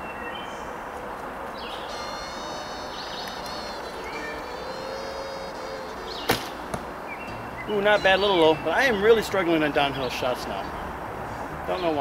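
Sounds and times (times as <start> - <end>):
birds calling: 1.4 - 12.0
woodland hiss: 1.5 - 7.2.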